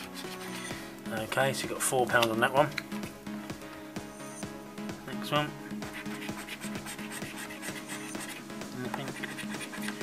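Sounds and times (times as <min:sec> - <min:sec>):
coin scraping scratchcard: 0:00.0 - 0:00.8, 0:06.0 - 0:08.4, 0:09.0 - 0:10.0
background music with held notes: 0:00.0 - 0:10.0.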